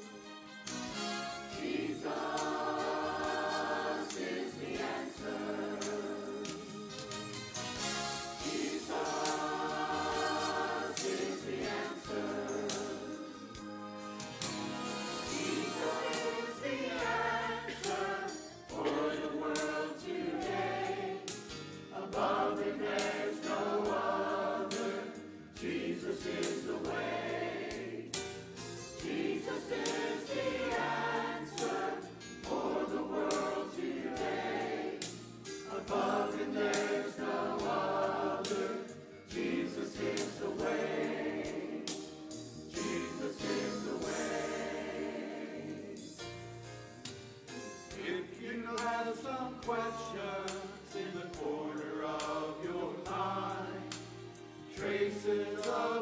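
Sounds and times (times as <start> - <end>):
choir singing gospel: 0.7 - 56.0
band with bass piano drums: 13.6 - 16.5.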